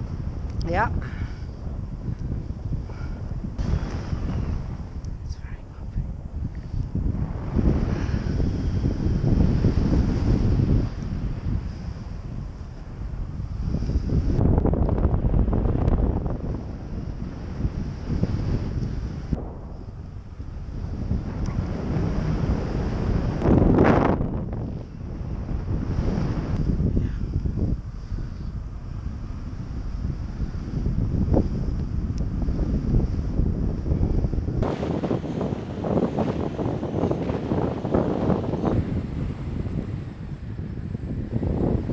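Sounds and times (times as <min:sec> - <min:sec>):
wind buffeting microphone: 0:00.0 - 0:41.9.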